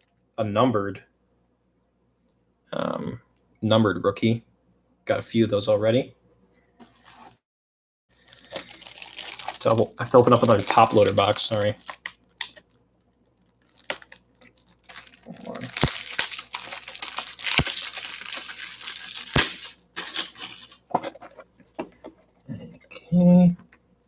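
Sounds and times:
plastic packaging crinkling and tearing: 7.0s - 7.4s, 8.2s - 20.9s.

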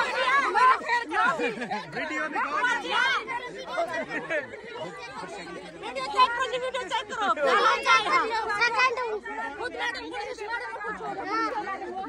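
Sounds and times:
women chattering: 0.0s - 12.0s.

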